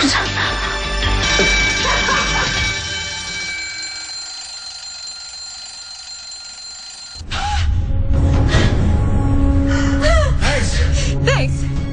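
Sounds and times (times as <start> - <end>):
music: 0.0 - 4.0, 7.2 - 11.9
alarm clock ringing: 1.2 - 7.2.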